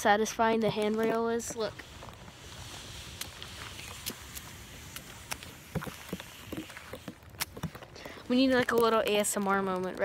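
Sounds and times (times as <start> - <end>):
snow and ice crunching: 0.0 - 10.0
steady hiss: 1.2 - 7.2.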